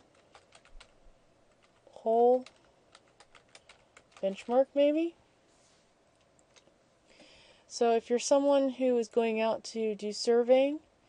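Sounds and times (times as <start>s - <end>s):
keyboard typing: 0.0s - 4.7s.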